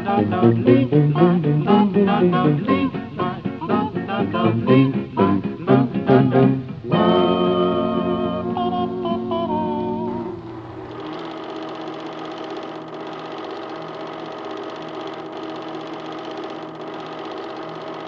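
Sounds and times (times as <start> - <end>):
film projector whirring: 10.1 - 18.0.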